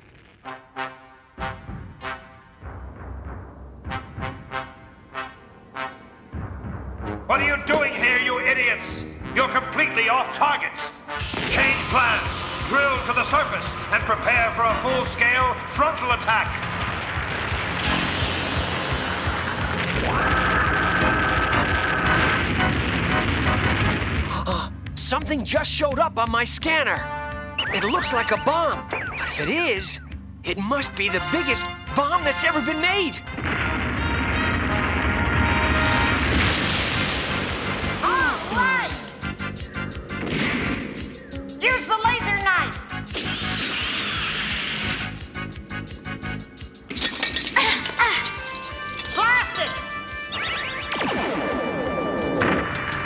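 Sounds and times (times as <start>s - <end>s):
dramatic background music: 0.4s - 24.9s, 38.6s - 46.9s, 48.4s - 53.0s
cartoon rock rumbling and crashing: 15.2s - 24.3s, 33.3s - 38.4s, 50.8s - 53.0s
excited shouts: 38.0s - 39.1s.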